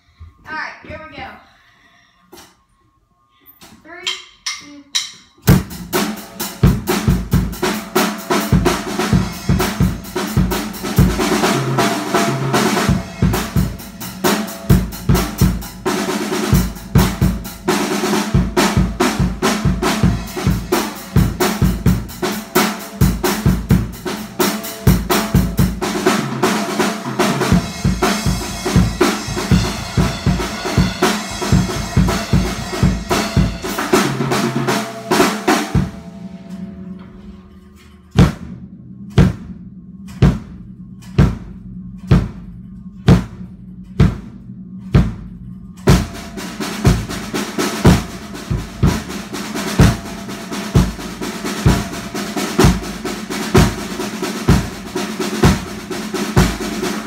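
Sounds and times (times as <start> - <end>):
cymbals crashing: 3.9 - 57.0
snare and tom strikes: 38.2 - 42.5
bass drum kicks: 38.2 - 47.3.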